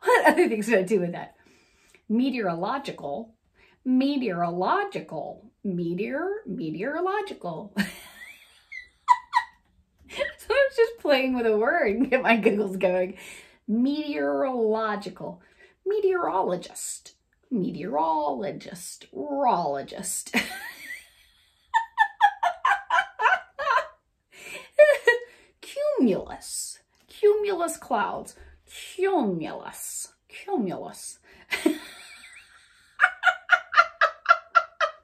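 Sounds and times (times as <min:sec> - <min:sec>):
woman giggling: 0:07.8 - 0:10.4, 0:20.4 - 0:25.1, 0:31.5 - 0:35.0
woman laughing heartily: 0:07.8 - 0:10.4, 0:20.4 - 0:25.1, 0:31.5 - 0:35.0.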